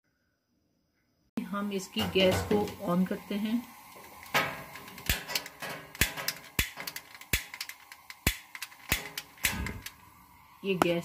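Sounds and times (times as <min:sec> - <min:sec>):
gas oven igniter clicking: 0:02.0 - 0:02.9, 0:03.9 - 0:10.1.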